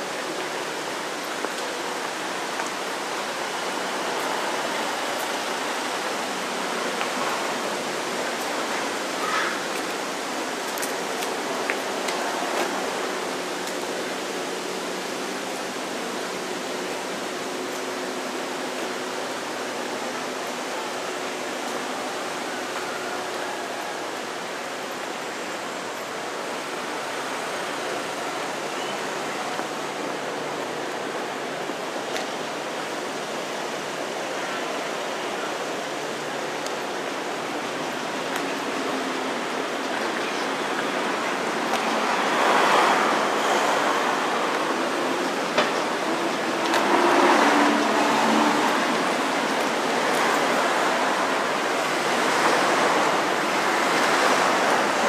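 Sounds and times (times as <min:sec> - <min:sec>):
city street ambience: 0:00.0 - 0:55.0.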